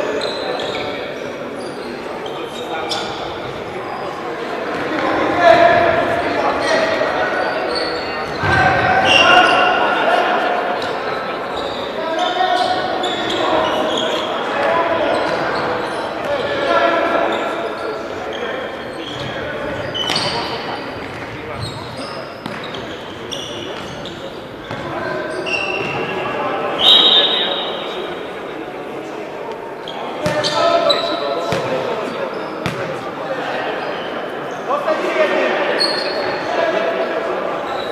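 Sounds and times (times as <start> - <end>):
players shouting in sports hall: 0.0 - 28.4.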